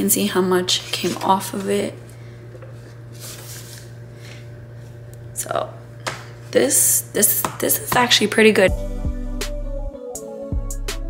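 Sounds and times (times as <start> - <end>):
steady low hum: 0.0 - 9.9
paper rustling: 0.8 - 1.7, 2.8 - 4.4.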